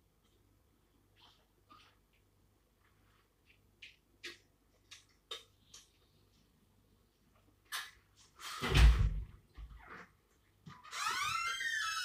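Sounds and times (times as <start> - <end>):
door hinge creaking: 10.8 - 12.0.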